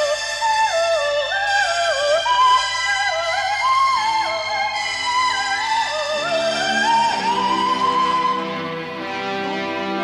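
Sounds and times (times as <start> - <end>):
low held accompaniment notes: 6.0 - 10.0.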